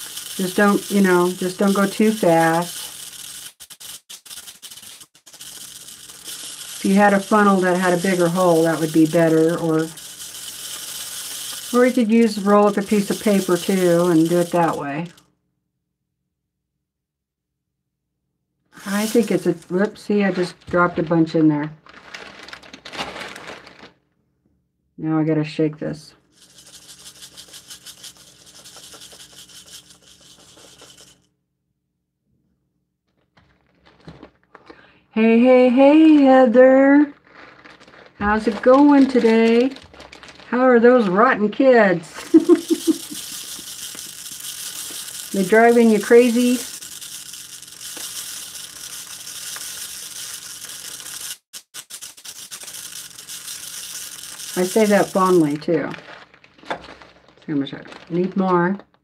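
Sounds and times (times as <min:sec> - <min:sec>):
rice trickling: 0:00.0 - 0:14.6, 0:42.2 - 0:58.2
rice grains rustling in bag: 0:18.8 - 0:23.9, 0:33.4 - 0:34.6, 0:37.1 - 0:41.3, 0:52.6 - 0:59.0.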